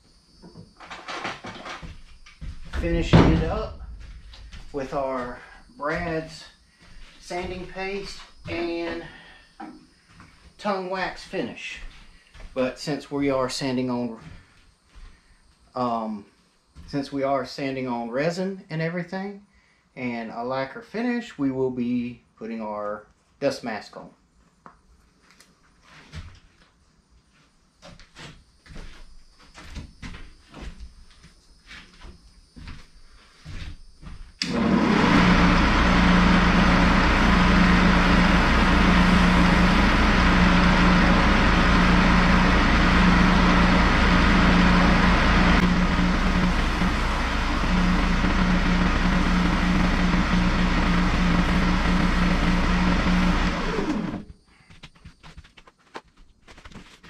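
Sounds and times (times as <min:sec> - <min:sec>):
lathe motor hum: 0:02.8 - 0:09.2, 0:34.4 - 0:54.3
pad rubbing spinning bowl: 0:34.6 - 0:54.3.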